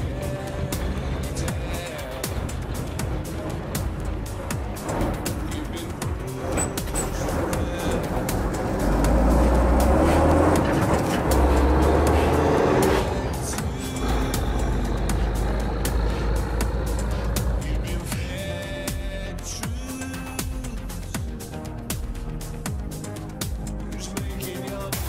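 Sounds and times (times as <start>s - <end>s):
truck diesel engine pulling hard: 0.0s - 20.2s
electronic music with beat: 0.0s - 25.0s.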